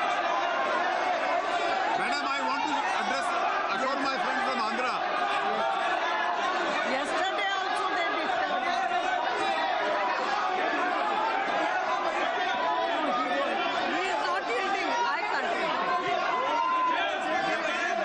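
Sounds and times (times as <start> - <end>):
crowd talking and shouting: 0.0 - 18.0.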